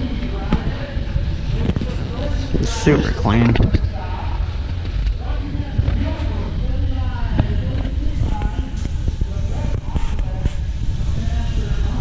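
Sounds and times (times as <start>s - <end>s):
people talking indistinctly: 0.0s - 12.0s
steady low rumble: 0.0s - 12.0s.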